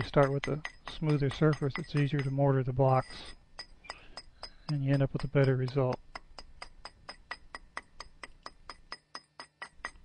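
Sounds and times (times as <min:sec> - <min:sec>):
chisel tapping concrete: 0:00.0 - 0:10.0.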